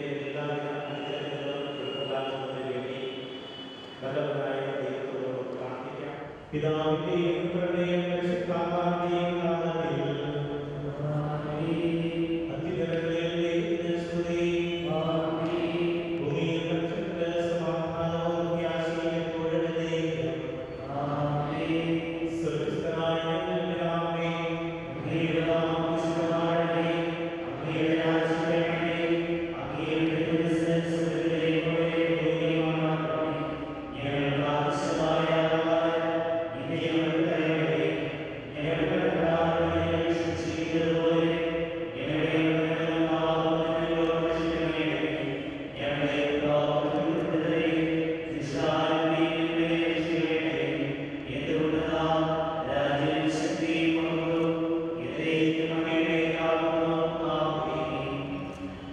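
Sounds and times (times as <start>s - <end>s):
man chanting a prayer: 0.0s - 58.9s.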